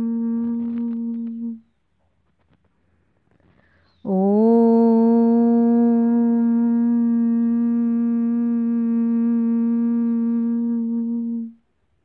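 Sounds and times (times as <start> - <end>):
woman humming a long note: 0.0 - 1.8, 4.0 - 11.6.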